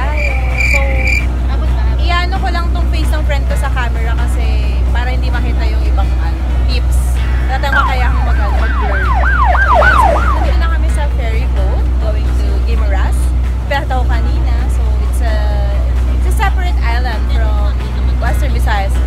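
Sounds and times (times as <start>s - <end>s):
ferry engine drone: 0.0s - 19.0s
siren-like wail: 7.8s - 10.6s.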